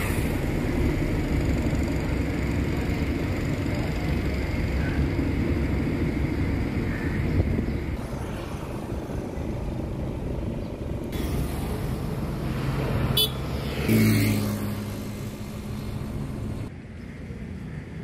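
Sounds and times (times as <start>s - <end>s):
low rumbling street background: 0.0s - 18.0s
motorcycle passing by: 11.2s - 16.7s.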